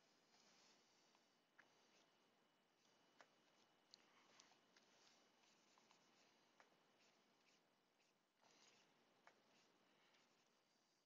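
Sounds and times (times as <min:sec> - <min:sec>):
stylus scratching on tablet: 0:00.0 - 0:11.0.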